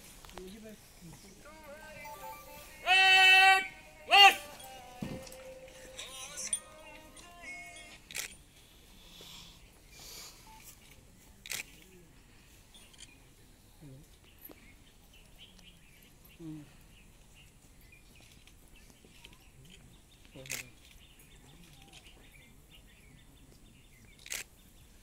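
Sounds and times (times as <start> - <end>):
person shouting drill command: 2.8 - 4.6
faint murmuring talk: 8.9 - 17.5, 18.9 - 24.3.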